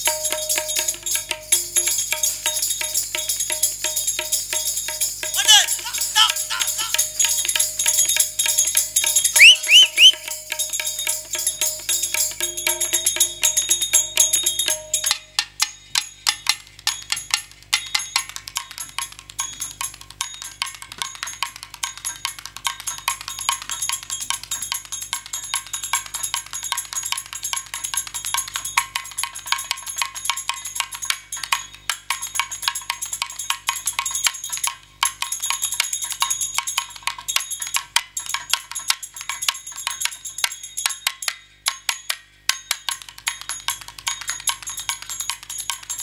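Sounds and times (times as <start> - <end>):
fast percussion rhythm: 0.0 - 46.0.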